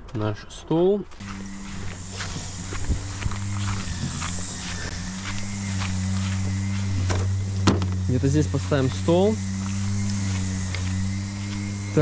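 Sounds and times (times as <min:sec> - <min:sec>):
footsteps: 0:01.1 - 0:12.0
steady low hum: 0:01.2 - 0:12.0.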